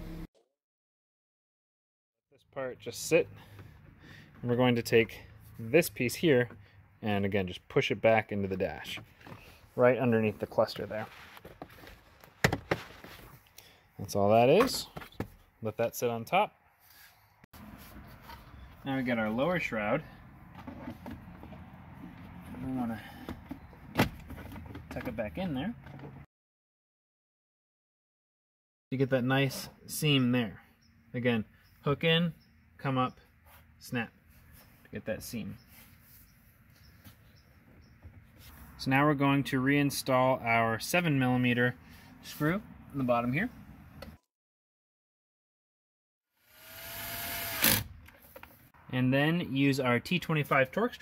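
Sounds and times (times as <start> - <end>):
power drill motor whirring: 46.5 - 48.0.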